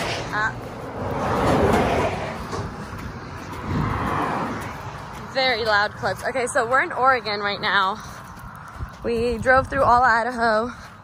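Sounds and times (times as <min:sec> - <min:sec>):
cars passing on a highway: 0:00.0 - 0:11.0.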